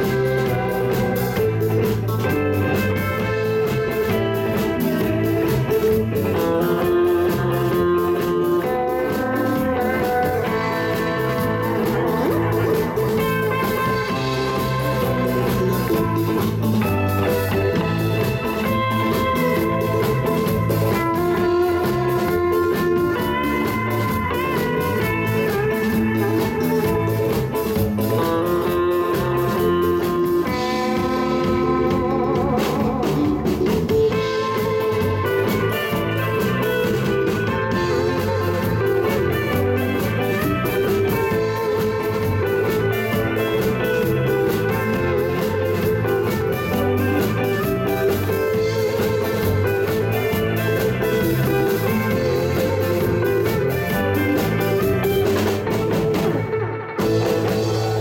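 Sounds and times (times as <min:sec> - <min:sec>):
instrumental rock band: 0:00.0 - 0:58.0
lead electric guitar: 0:00.0 - 0:58.0.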